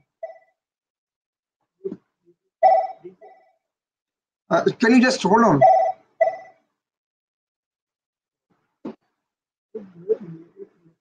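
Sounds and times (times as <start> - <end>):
telephone ringing: 5.5 - 6.6.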